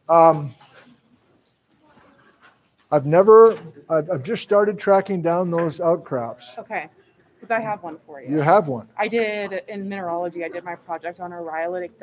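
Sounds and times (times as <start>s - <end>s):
person speaking: 0.1s - 0.6s, 2.9s - 6.6s, 7.5s - 9.0s.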